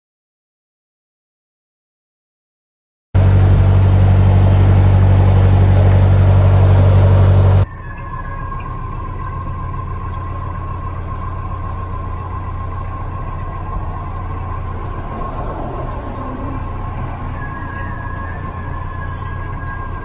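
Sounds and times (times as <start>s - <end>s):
diesel boat engine running: 3.2s - 20.0s
quiet engine rumble: 3.2s - 20.0s
thin steady whine: 3.2s - 20.0s.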